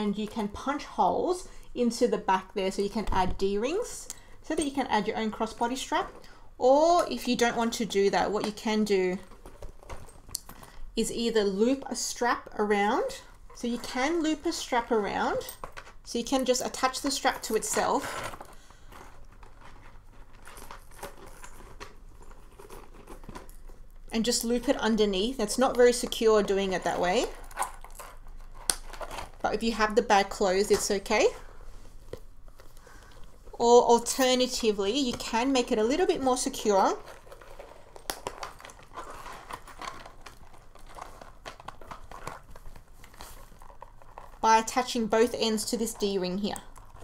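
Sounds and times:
leather bag rustling: 0:13.0 - 0:47.0
chain strap clinking: 0:18.3 - 0:23.9, 0:27.3 - 0:29.2.

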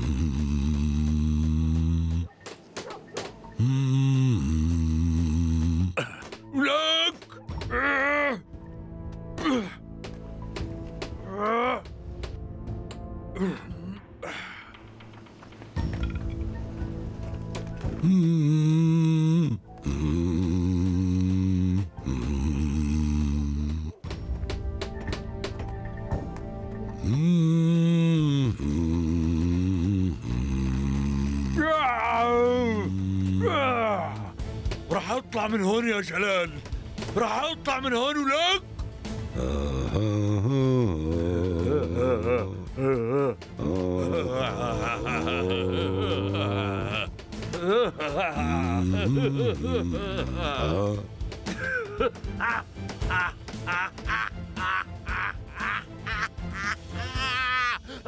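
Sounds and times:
dramatic background music: 0:00.0 - 0:58.0
man crying out muffled: 0:41.6 - 0:58.0.

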